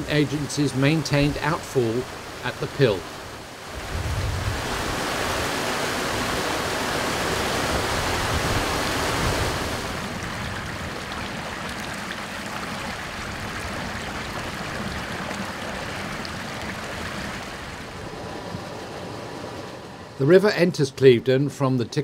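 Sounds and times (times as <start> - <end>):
water rushing over sluice gate: 0.0 - 20.0.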